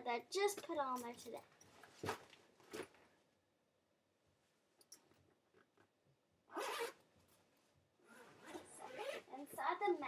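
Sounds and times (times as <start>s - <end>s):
backpack zipper pulled open: 6.5s - 7.0s, 8.0s - 9.3s.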